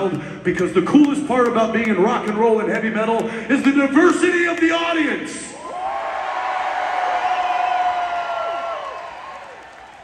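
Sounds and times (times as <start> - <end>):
concert crowd cheering: 5.5 - 10.0.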